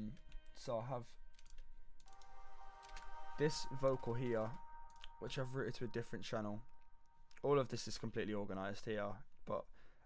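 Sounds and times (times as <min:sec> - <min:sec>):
faint sustained chord: 0:02.1 - 0:08.1.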